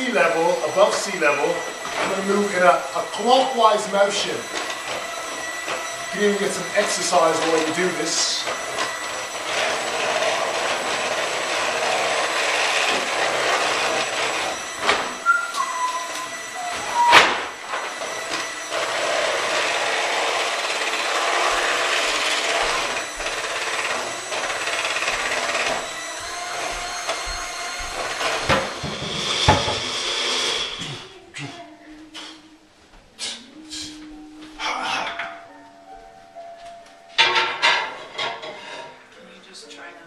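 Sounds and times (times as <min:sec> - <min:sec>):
electric hand mixer running: 0:00.0 - 0:31.2.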